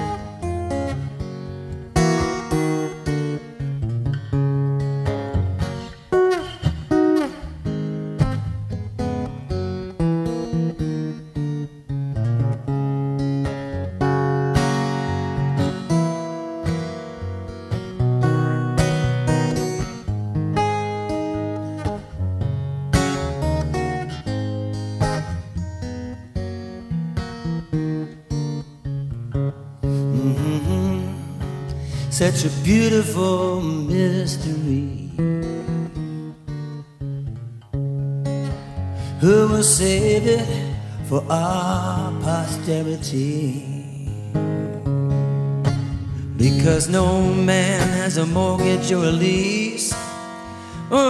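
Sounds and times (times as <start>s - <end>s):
acoustic guitar melody: 0.0s - 51.0s.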